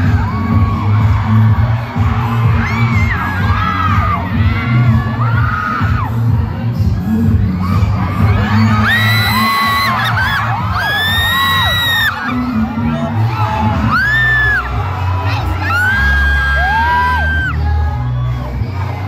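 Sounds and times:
crowd screaming and cheering: 0.0s - 19.0s
pop song with heavy bass: 0.0s - 19.0s.

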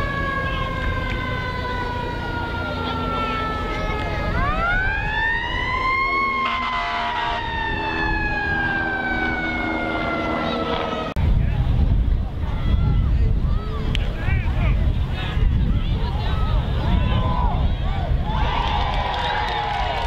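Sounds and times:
emergency siren wailing: 0.0s - 11.2s
wind rumble: 0.0s - 20.0s.

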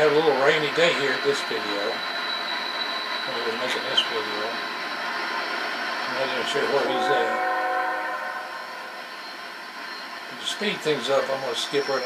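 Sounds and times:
train rushing noise: 0.0s - 12.0s.

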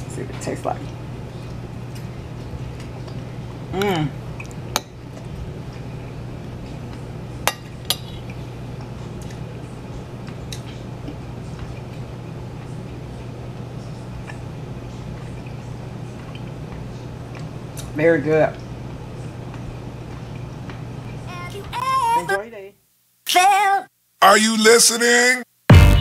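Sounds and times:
steady low hum: 0.0s - 23.2s.

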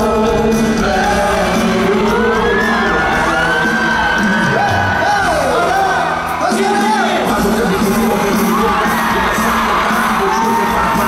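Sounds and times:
live pop band with singers: 0.0s - 11.0s
audience cheering and whooping: 1.0s - 11.0s.

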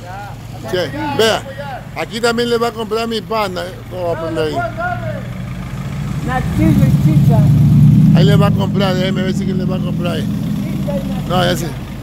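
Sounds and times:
car engine running at low revs: 0.0s - 12.0s.

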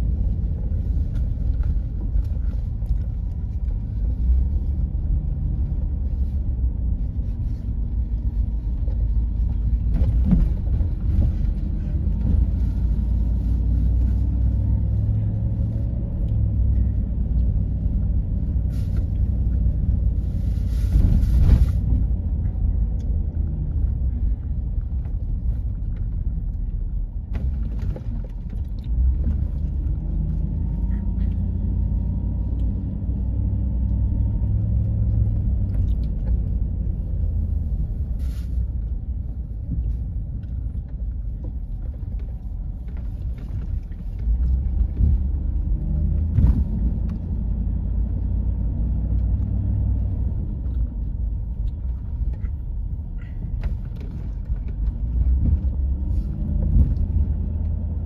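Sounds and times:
engine and tyre rumble: 0.0s - 58.0s.

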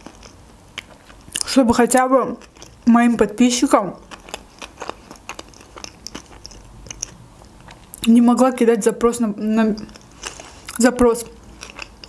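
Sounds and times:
chewing with wet clicks: 0.0s - 3.4s, 4.0s - 8.2s, 9.7s - 12.0s.

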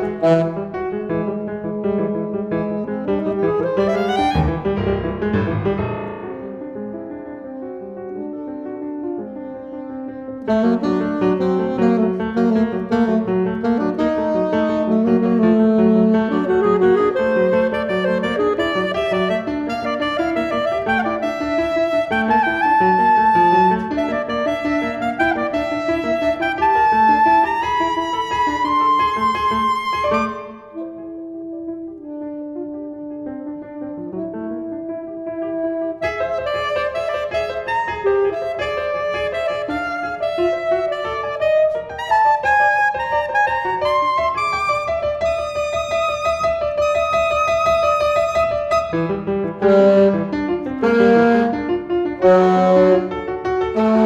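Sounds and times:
piano: 0.0s - 54.0s
saxophone: 0.0s - 54.0s.

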